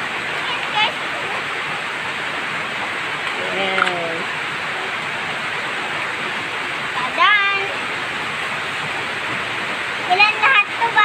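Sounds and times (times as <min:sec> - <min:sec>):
heavy rain pouring: 0:00.0 - 0:11.0
child's voice: 0:00.4 - 0:01.0, 0:10.0 - 0:11.0.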